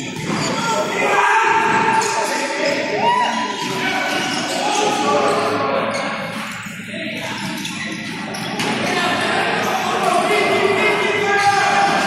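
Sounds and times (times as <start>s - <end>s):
shoes squeaking on floor: 1.8s - 10.3s.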